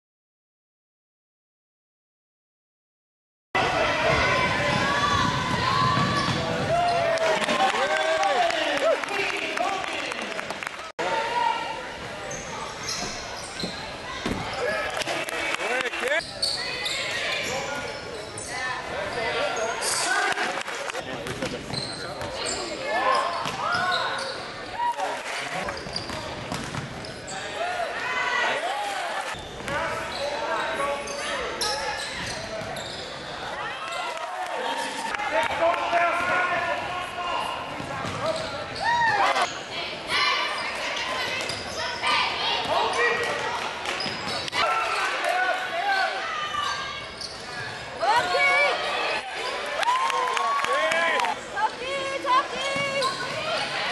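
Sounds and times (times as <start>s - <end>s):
players and crowd calling out: 3.6s - 10.2s, 11.0s - 53.9s
basketball bouncing: 4.1s - 6.8s, 26.0s - 27.0s
sneakers squeaking on court: 5.4s - 6.7s, 12.2s - 14.7s, 16.2s - 20.1s, 21.2s - 24.6s, 25.5s - 27.6s, 29.3s - 33.4s, 37.8s - 39.7s, 40.4s - 43.2s, 43.9s - 44.6s, 46.0s - 48.3s, 52.1s - 53.7s.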